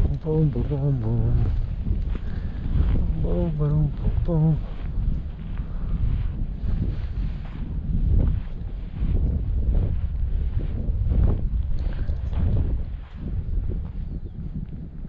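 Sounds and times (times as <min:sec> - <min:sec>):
footsteps on sand: 0:00.0 - 0:15.0
wind buffeting microphone: 0:00.0 - 0:15.0.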